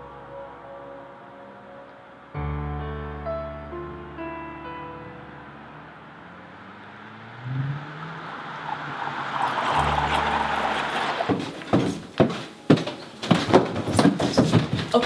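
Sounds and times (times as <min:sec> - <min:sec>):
car passing: 0:03.6 - 0:12.7
footsteps on wooden stairs: 0:11.3 - 0:15.0.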